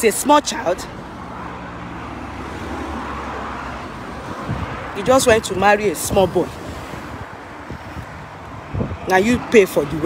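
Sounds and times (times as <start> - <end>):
vehicle passing by: 0.5 - 10.0.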